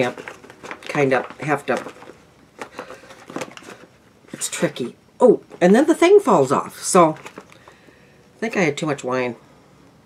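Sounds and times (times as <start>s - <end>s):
plastic bag crinkling: 0.0s - 4.9s, 6.5s - 7.8s.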